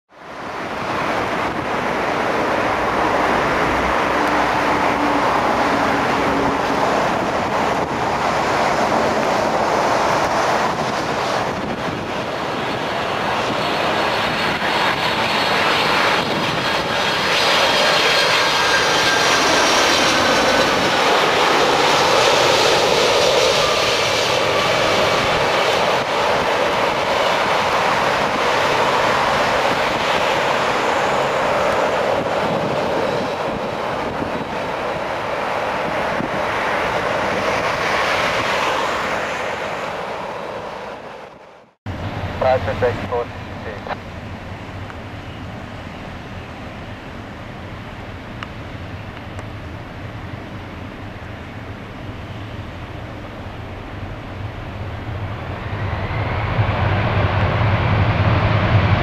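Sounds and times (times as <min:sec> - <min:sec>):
jet engine noise: 0:00.1 - 0:59.0.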